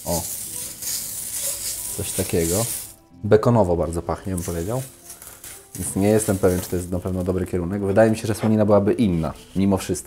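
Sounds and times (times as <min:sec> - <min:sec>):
bacon sizzling on hot plate: 0:00.0 - 0:03.0.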